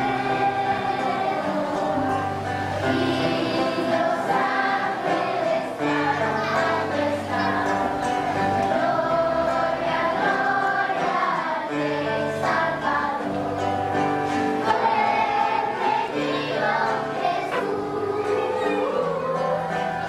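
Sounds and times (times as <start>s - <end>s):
children's choir singing folk song: 0.0s - 20.0s
instrumental accompaniment: 0.0s - 20.0s.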